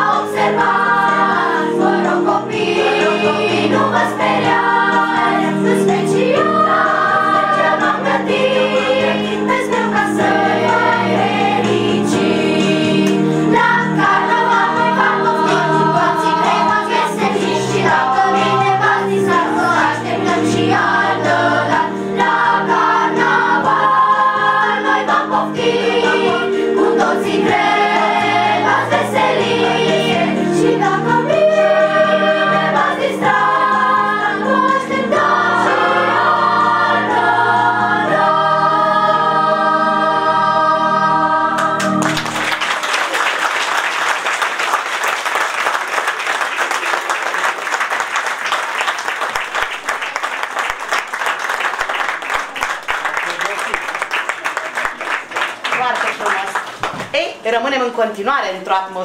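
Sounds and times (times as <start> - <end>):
children's choir singing: 0.0 - 53.0
audience applause: 41.6 - 57.1.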